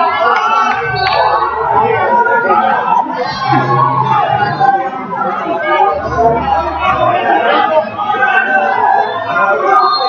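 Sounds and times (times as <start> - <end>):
spectators chattering and calling out: 0.0 - 10.0.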